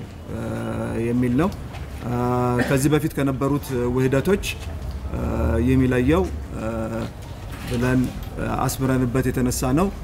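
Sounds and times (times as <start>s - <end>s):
man speaking into microphones: 0.2s - 10.0s.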